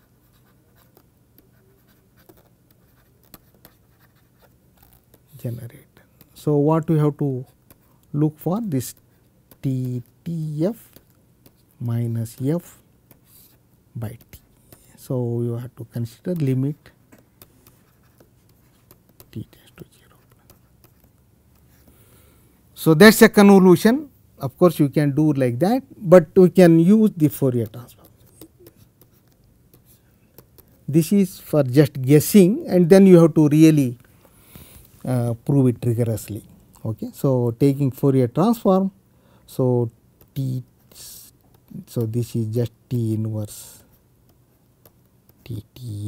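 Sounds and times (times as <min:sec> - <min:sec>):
low steady hum: 0:00.0 - 0:46.0.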